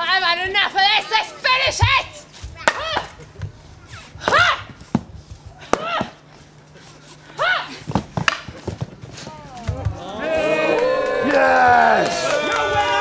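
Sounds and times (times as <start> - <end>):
crowd cheering and shouting: 9.8 - 13.0
fighters yelling: 10.0 - 13.0.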